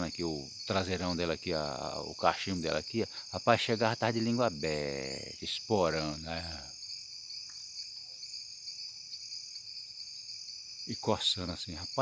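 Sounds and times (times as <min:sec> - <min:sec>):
insects chirring: 0:00.0 - 0:12.0.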